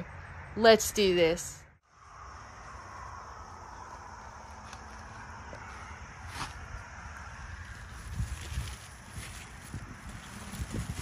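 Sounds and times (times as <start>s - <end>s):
wind rumbling on microphone: 1.9s - 11.0s.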